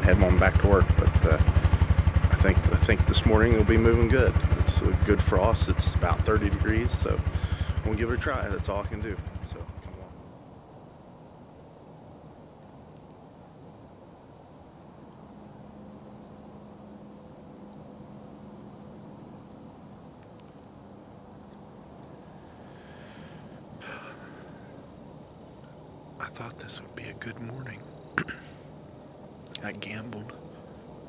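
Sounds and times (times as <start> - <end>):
faint steady hiss: 0.0 - 31.0
weak low hum: 0.0 - 31.0.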